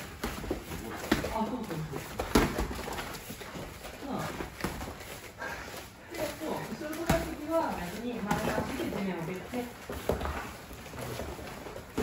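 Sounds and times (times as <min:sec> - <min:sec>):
boxing gloves smacking: 0:00.0 - 0:05.0.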